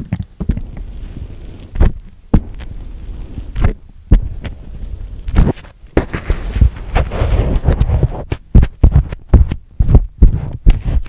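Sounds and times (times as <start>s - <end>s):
grainy rustle of sand: 0.6s - 11.0s
dull thumps on sand: 5.3s - 11.0s.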